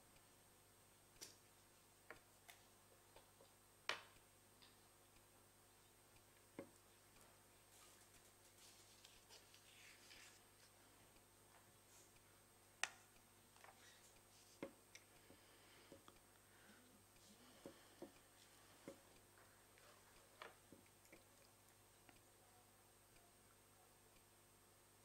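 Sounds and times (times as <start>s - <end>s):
faint rustling: 7.2s - 11.0s
small clicks and taps: 12.8s - 16.2s.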